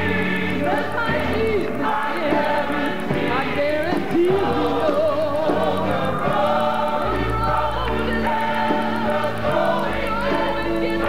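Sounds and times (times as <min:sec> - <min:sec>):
fast even ticking rhythm: 0:00.0 - 0:11.0
voices singing together: 0:00.0 - 0:11.0.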